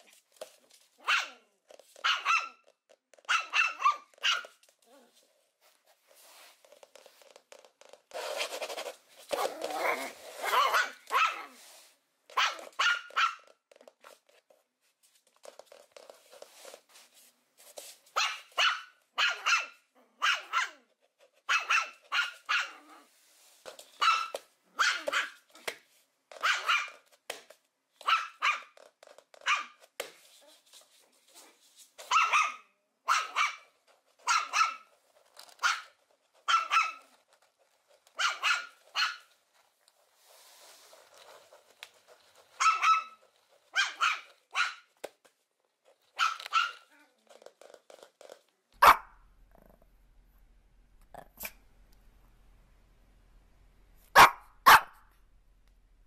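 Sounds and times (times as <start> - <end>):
puppy yapping: 1.0 - 1.4, 2.0 - 2.6, 3.3 - 5.1, 9.4 - 11.5, 18.2 - 20.9, 35.6 - 37.1, 46.2 - 47.0, 48.8 - 49.2, 54.2 - 55.0.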